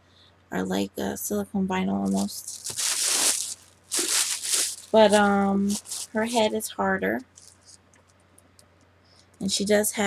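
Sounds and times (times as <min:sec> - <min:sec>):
rustling handling noise: 0:02.0 - 0:08.2.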